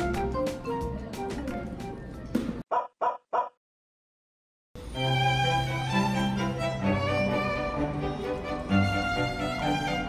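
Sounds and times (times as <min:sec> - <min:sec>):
light background music: 0:00.0 - 0:02.6, 0:04.8 - 0:10.0
dog barks: 0:02.7 - 0:03.6.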